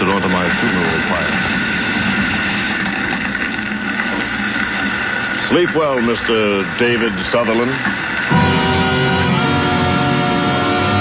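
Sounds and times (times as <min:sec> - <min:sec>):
fire burning: 0:00.0 - 0:10.8
old recording hiss: 0:00.0 - 0:11.0.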